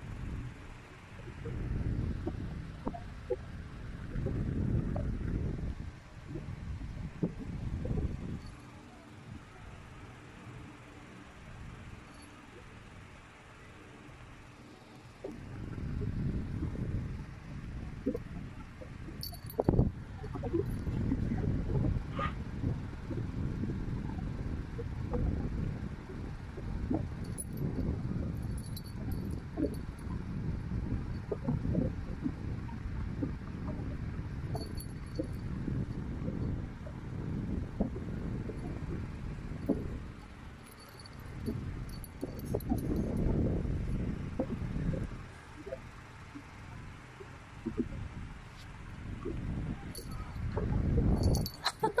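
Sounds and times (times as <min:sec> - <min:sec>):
collar tag and bell jingling: 0:19.1 - 0:21.0, 0:27.2 - 0:30.1, 0:34.5 - 0:35.4, 0:39.6 - 0:43.3, 0:49.9 - 0:50.4, 0:51.1 - 0:52.0.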